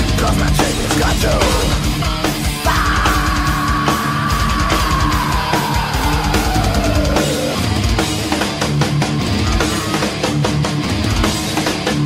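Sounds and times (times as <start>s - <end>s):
heavy metal band playing: 0.0s - 12.0s.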